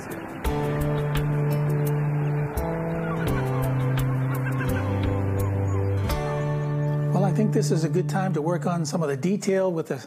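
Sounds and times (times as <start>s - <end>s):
low sustained music chords: 0.0s - 9.7s.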